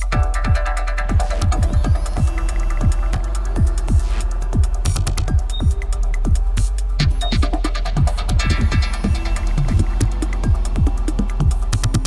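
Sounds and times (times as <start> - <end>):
sub-bass hum: 0.0 - 12.0
techno kick drum: 0.0 - 12.0.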